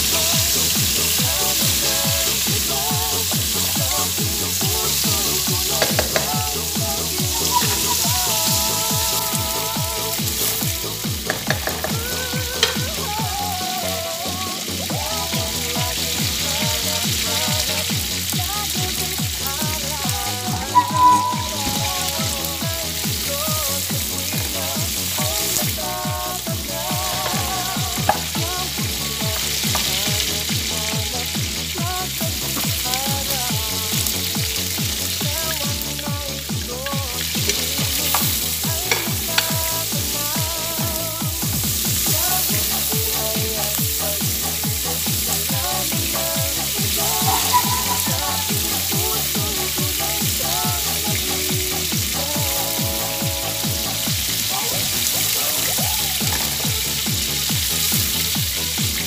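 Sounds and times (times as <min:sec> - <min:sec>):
background music with beat: 0:00.0 - 0:59.0
fish and onions sizzling in oil: 0:00.0 - 0:59.0
wooden spoon stirring: 0:20.4 - 0:22.2, 0:37.1 - 0:39.6.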